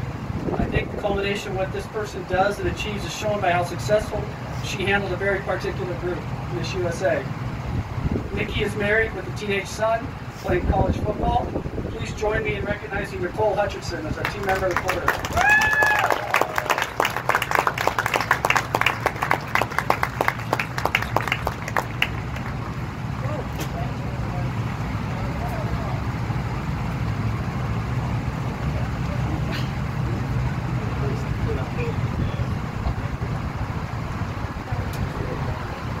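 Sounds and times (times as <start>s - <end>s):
steady low rumble: 0.0s - 15.5s, 16.9s - 36.0s
crowd applauding: 14.2s - 22.8s.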